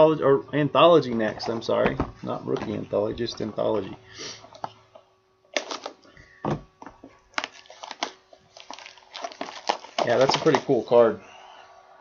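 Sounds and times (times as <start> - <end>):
plastic wrapping crinkling: 5.5 - 6.1, 7.0 - 11.0.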